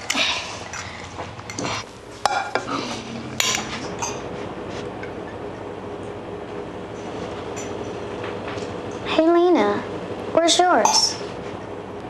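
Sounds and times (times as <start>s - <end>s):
metal pot and utensils clattering: 10.8s - 11.2s.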